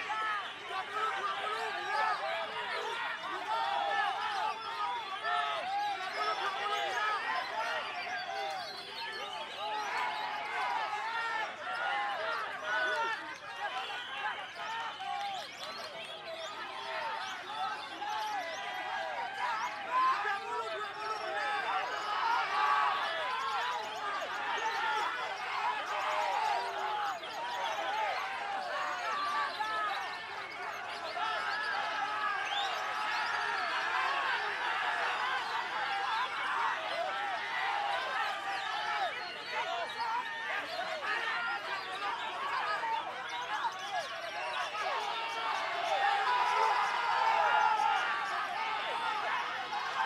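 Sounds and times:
people calling and shouting: 0.0s - 50.0s
caged songbirds whistling: 29.1s - 33.8s.

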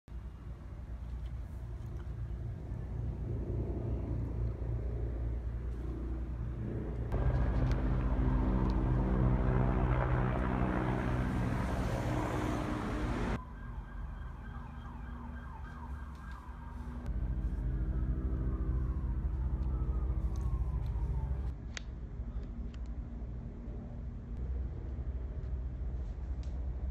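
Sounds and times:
low engine hum: 0.1s - 13.4s, 15.1s - 26.9s
faint siren-like wails: 2.5s - 21.6s.

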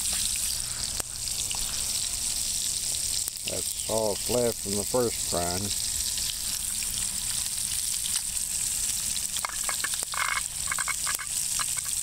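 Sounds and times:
fish sizzling in a pan: 0.0s - 12.0s.

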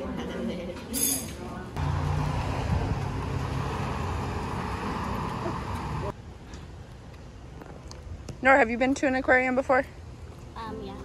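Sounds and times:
car engines rumbling: 1.8s - 6.2s.

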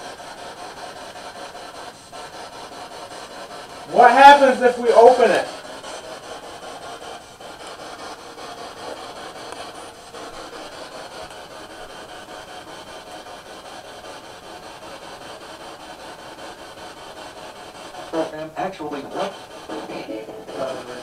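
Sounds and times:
radio static hiss: 3.9s - 5.7s, 18.0s - 21.0s.

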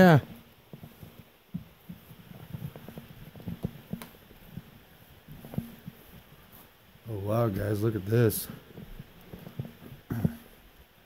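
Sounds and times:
footsteps on wooden floorboards: 0.0s - 6.8s.

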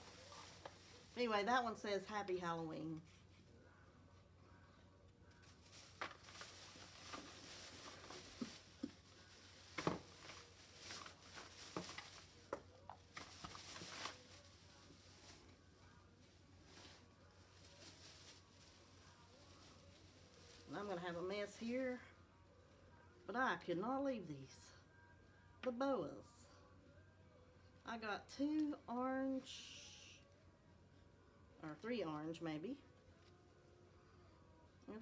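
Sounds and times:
plastic bag rustling: 0.0s - 2.0s, 5.4s - 21.9s.

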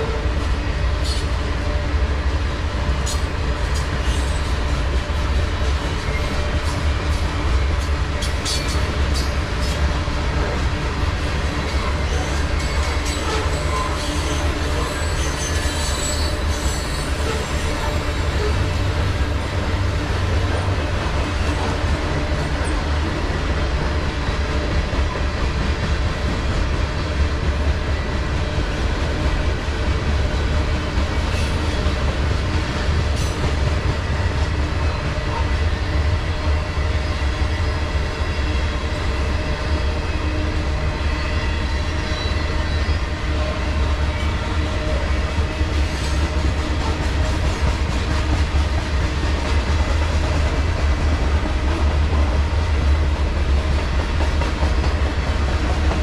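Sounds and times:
steel train wheels rumbling on rail: 0.0s - 56.0s.

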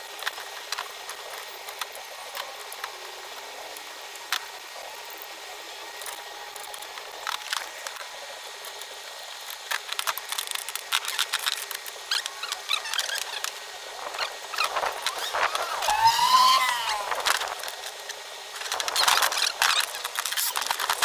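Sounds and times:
squeak rising and falling: 12.1s - 13.4s, 14.2s - 17.4s.

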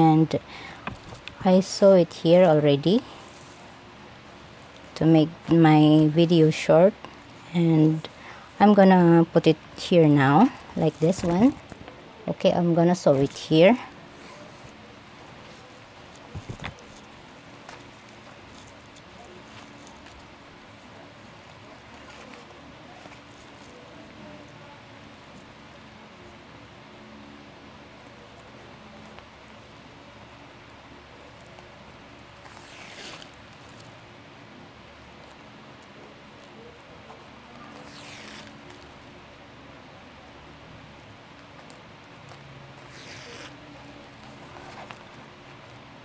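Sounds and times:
faint steady hum: 0.0s - 46.0s
thread drawn through fabric: 37.7s - 38.6s.

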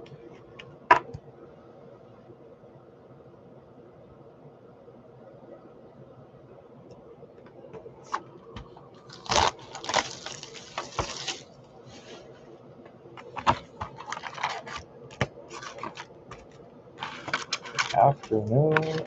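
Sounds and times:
cardboard and wrapping tearing: 9.1s - 11.5s, 13.4s - 14.8s, 15.5s - 16.1s, 17.0s - 19.0s
clicks and rustling: 13.2s - 19.0s.

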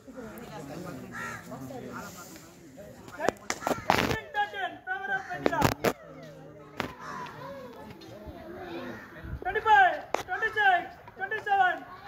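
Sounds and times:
crow cawing: 1.1s - 1.5s, 7.0s - 7.4s.

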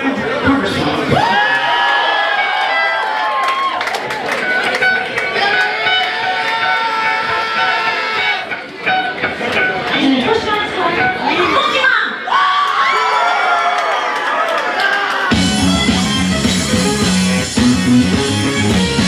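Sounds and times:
crowd shouting and cheering: 0.0s - 19.0s.

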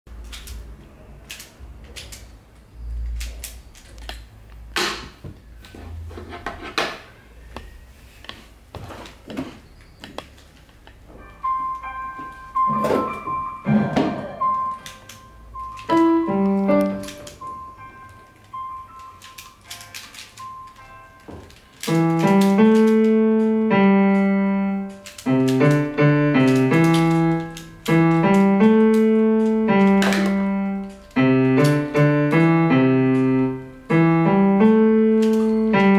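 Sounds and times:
plastic puzzle clicking: 0.2s - 2.4s, 3.1s - 5.0s, 14.7s - 17.5s, 18.4s - 20.8s, 21.4s - 35.9s
keyboard melody: 10.6s - 35.9s.

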